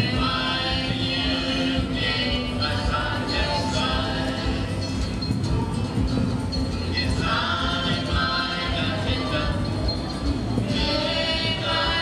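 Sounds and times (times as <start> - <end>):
group of voices singing: 0.0 - 5.8, 6.7 - 12.0
dance music: 0.0 - 12.0.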